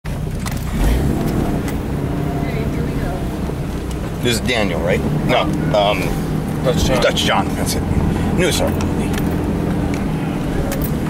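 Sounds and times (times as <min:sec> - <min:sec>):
vehicle engine idling: 0:00.1 - 0:11.0.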